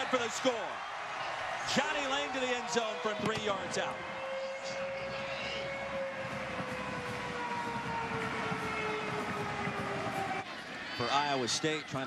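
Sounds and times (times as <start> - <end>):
crowd noise: 0.0 - 12.0
stadium siren falling tone: 2.3 - 10.5.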